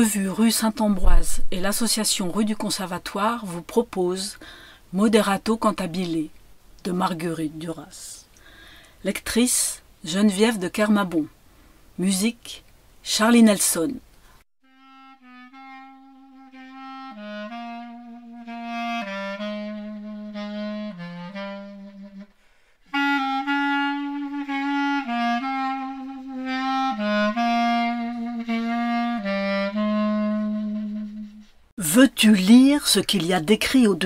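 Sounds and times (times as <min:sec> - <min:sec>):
wind instrument slow melody: 0:14.6 - 0:31.6.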